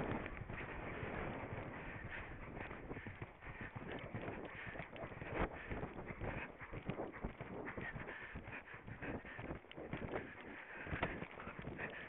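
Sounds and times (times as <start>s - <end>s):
hoofbeats on turf: 0.0s - 12.0s.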